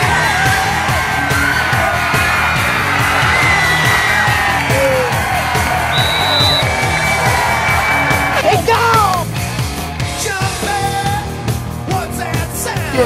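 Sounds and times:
rock music with fast drum beat: 0:00.0 - 0:13.0.

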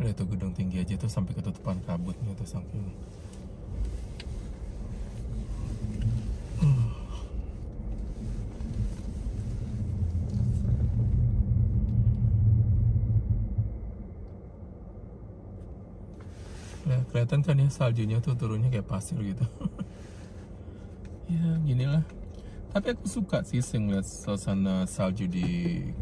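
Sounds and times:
car engine rumble from inside: 0:00.0 - 0:26.0.

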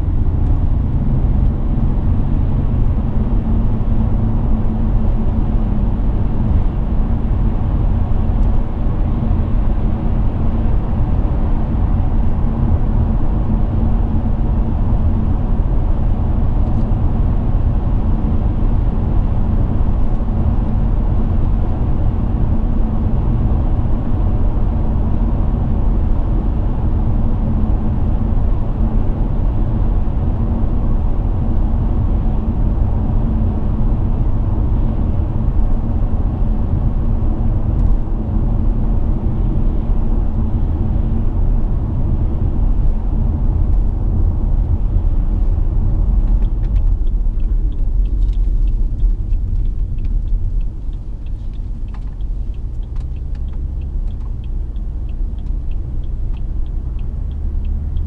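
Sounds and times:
tyre and road noise: 0:00.0 - 0:58.0.

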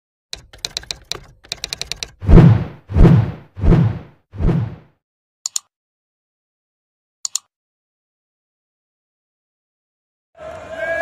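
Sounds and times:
typewriter key clicks: 0:00.4 - 0:02.2, 0:05.5 - 0:05.7, 0:07.3 - 0:07.5.

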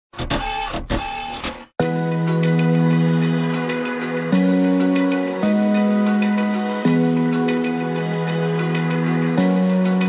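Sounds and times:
low chord background music: 0:01.8 - 0:10.0.

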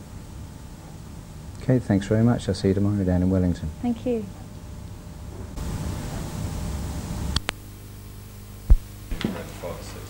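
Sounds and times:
hum: 0:03.8 - 0:09.2
loud low thump: 0:08.7 - 0:09.4.

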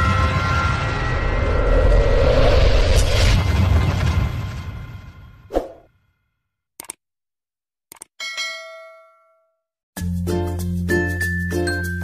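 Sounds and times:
deep rumble: 0:00.0 - 0:05.5
whoosh: 0:00.3 - 0:05.9.

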